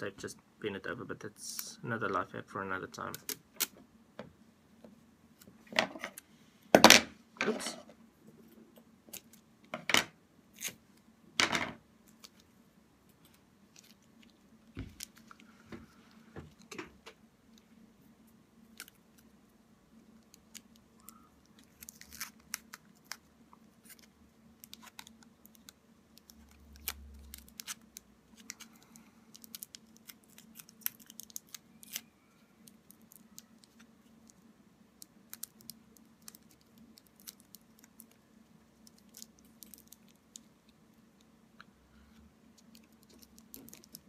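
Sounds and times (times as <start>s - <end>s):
plastic wrap crinkling: 29.3s - 34.4s.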